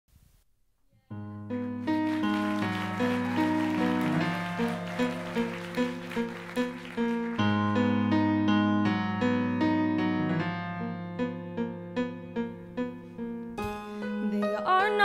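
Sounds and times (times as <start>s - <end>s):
keyboard playing: 1.2s - 15.0s.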